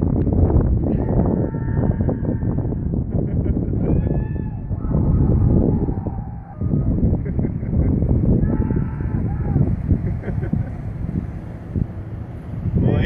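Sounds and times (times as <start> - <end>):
wind buffeting microphone: 0.0 - 13.0
person yelling: 1.0 - 2.5, 8.4 - 9.7.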